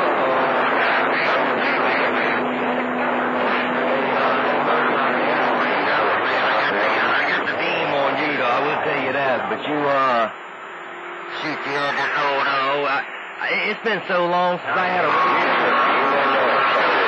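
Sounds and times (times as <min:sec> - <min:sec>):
garbled radio voices: 0:00.0 - 0:10.4, 0:11.3 - 0:17.0
radio static: 0:00.0 - 0:10.5, 0:11.2 - 0:17.0
steady low tone: 0:00.0 - 0:17.0.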